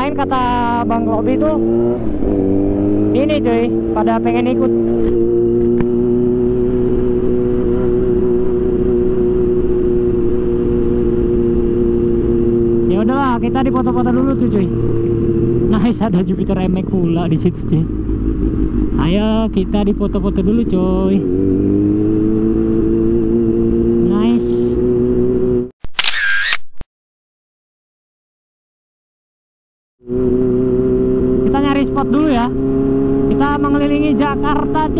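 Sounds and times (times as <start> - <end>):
motorcycle engine cruising: 0.0 - 25.7, 30.0 - 34.9.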